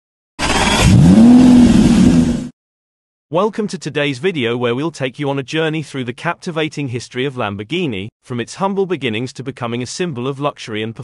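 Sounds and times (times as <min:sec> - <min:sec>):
car engine revving: 0:00.4 - 0:02.5.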